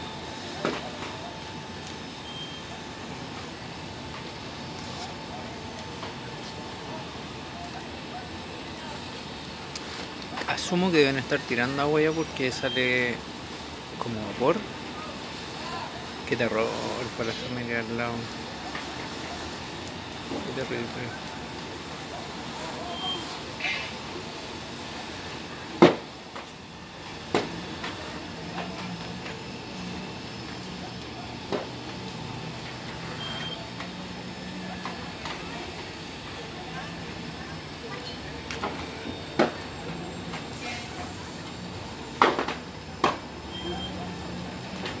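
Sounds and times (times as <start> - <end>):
distant building fire: 0.0 - 45.0
short high beep: 2.2 - 2.7, 22.9 - 23.3, 33.2 - 33.7, 43.5 - 44.0.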